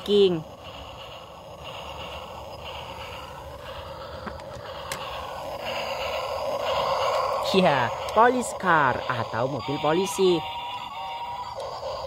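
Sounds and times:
toy train rattling on track: 0.0s - 12.0s.

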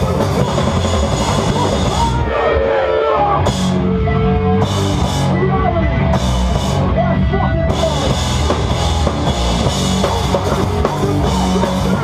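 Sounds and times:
punk band playing live: 0.0s - 12.0s.

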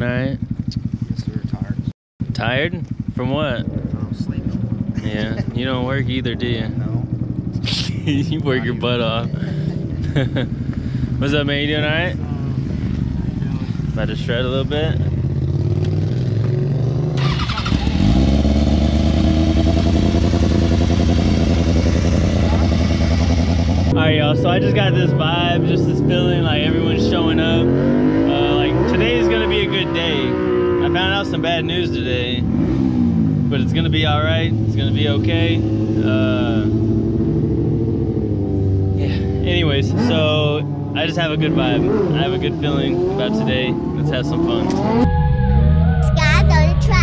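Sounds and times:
motorcycle engine idling: 0.0s - 26.9s.

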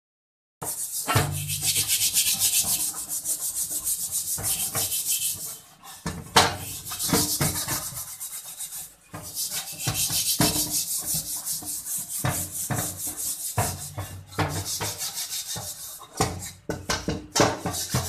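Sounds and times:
steel wool scrubbing a wok: 0.6s - 18.0s.

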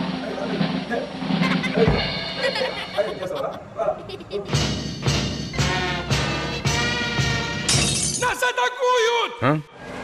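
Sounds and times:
jingle music with regular beat: 0.0s - 3.6s, 4.2s - 8.4s.

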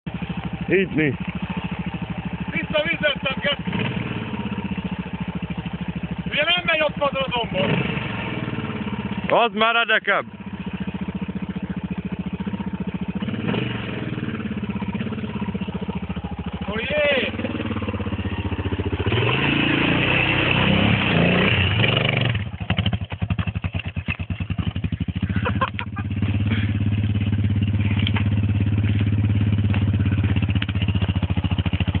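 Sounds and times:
dirt bike engine revving and idling: 0.1s - 32.0s.

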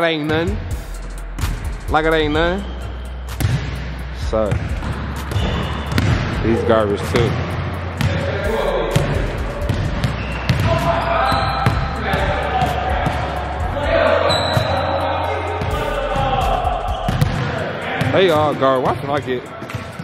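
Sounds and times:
basketballs bouncing on wooden floor: 3.4s - 3.7s, 4.5s - 6.5s, 7.1s - 13.3s, 17.1s - 18.5s.

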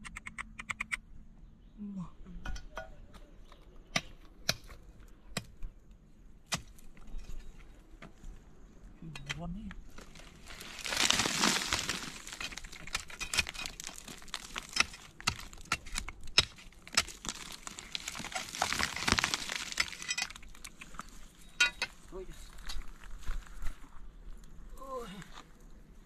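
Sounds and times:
rock scraping and crumbling: 9.6s - 25.6s.

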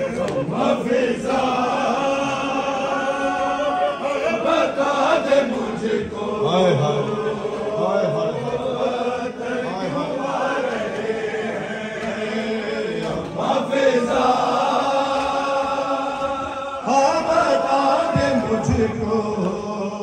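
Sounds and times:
crowd of men chanting in unison: 0.0s - 20.0s
man reciting on a microphone: 0.0s - 20.0s.

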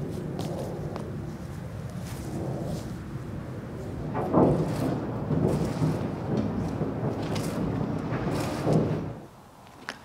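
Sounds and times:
wind rumbling on microphone: 0.0s - 9.8s.

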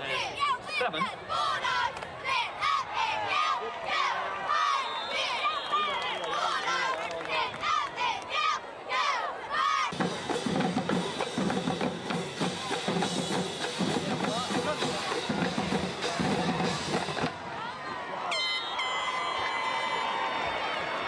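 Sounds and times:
marching drumline playing: 9.9s - 17.4s.

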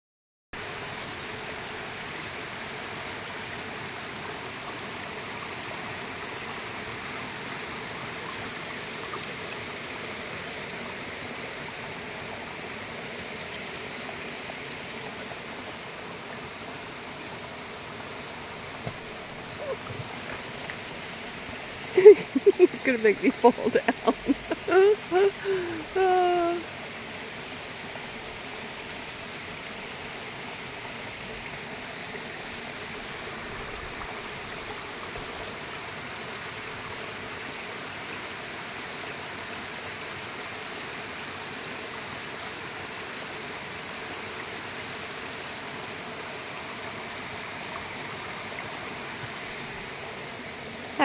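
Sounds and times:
waterfall running over rocks: 0.6s - 51.0s
woman laughing: 19.6s - 19.9s, 21.9s - 26.6s.

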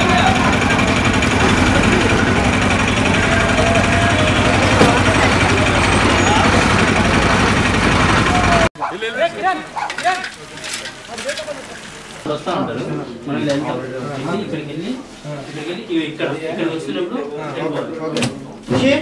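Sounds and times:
bus engines running: 0.0s - 8.7s, 10.4s - 12.3s
crowd of voices: 0.0s - 19.0s.

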